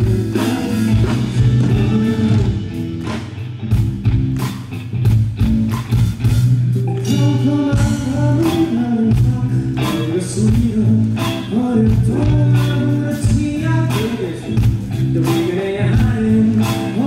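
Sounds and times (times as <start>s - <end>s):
bass line: 0.0s - 17.0s
electric guitar: 0.0s - 17.0s.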